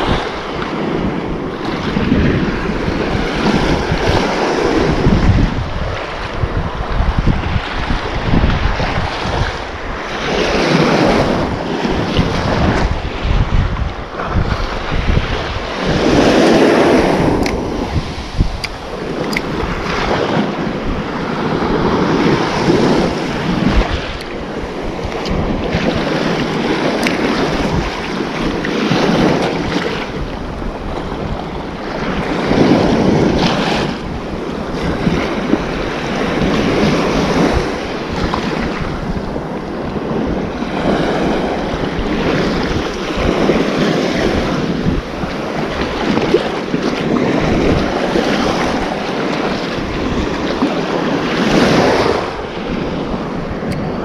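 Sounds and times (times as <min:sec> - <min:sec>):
small waves washing on sand: 0:00.0 - 0:54.0
wind buffeting microphone: 0:00.0 - 0:54.0.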